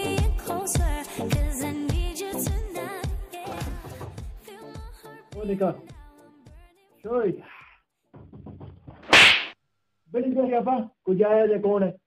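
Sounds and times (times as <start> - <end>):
hand slapping head: 9.1 - 9.6.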